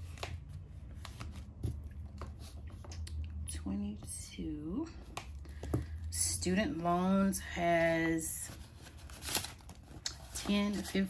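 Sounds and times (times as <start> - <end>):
plastic envelope and bills rustling: 8.2 - 11.0.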